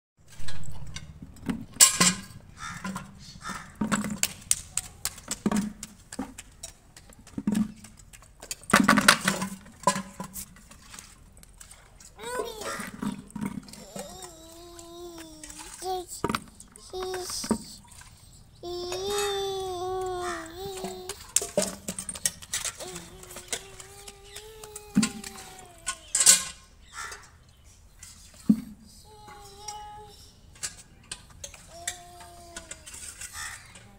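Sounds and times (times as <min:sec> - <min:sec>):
bucket scraping rattle: 0:06.6 - 0:26.6
plastic bucket scraping on concrete: 0:07.2 - 0:14.3.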